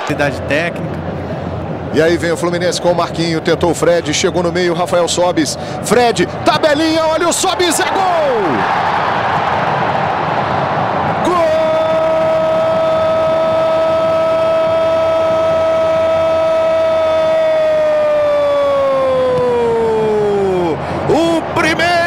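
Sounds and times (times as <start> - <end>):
stadium crowd noise: 0.0 - 22.0
man speaking rapidly: 2.0 - 8.6.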